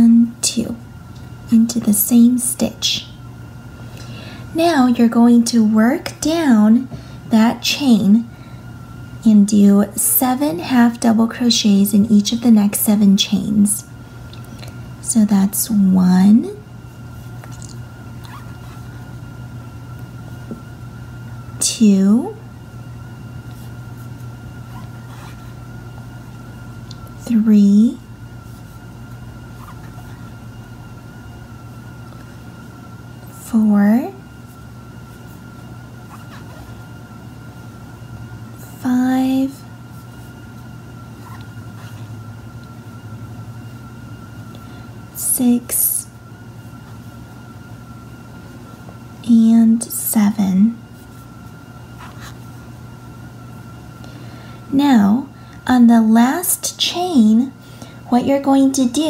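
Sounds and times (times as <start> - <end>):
faint high-pitched whine: 0.0 - 59.0
steady low hum: 0.0 - 59.0.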